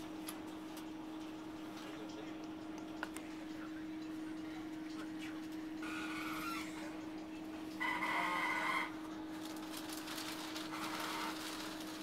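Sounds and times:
train low hum: 0:00.0 - 0:05.9.

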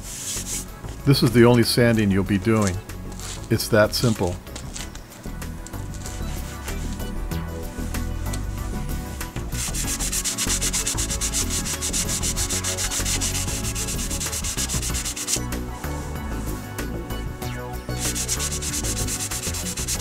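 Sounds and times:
hand sanding a bumper: 0:00.0 - 0:00.7, 0:07.7 - 0:16.6, 0:17.9 - 0:20.0.

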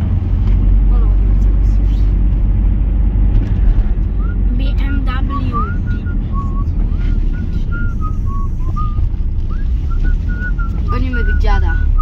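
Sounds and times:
car cabin rumble: 0:00.0 - 0:12.0
person whistling a tune: 0:05.2 - 0:12.0.

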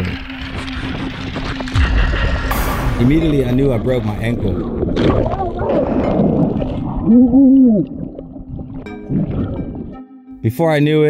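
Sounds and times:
underwater bubbling water: 0:00.0 - 0:02.6, 0:03.4 - 0:10.0.

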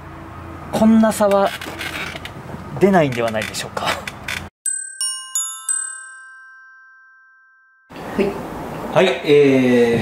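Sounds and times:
bell-like chime: 0:04.6 - 0:07.9.

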